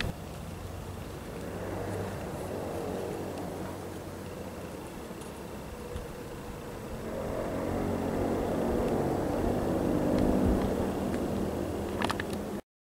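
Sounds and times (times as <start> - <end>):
passing vehicle engine: 0.0 - 12.6.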